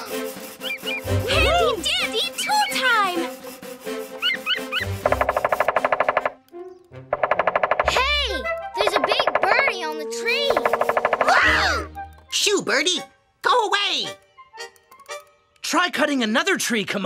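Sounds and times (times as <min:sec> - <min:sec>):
cartoon woodpecker pecking on log: 0:00.3 - 0:12.6, 0:14.0 - 0:15.3.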